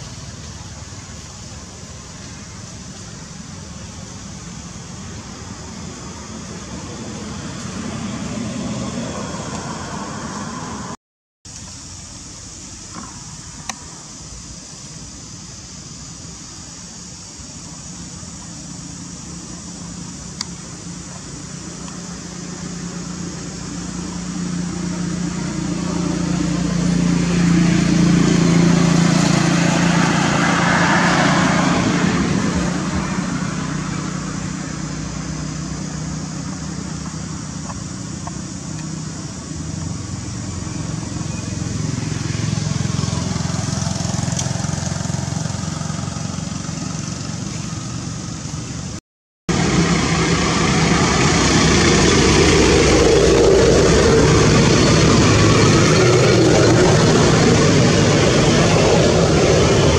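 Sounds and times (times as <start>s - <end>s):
outdoor background noise: 0.0s - 59.9s.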